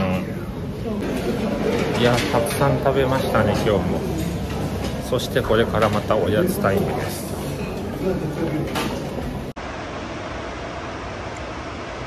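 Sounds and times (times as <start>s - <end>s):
dining hall room noise: 0.0s - 9.6s.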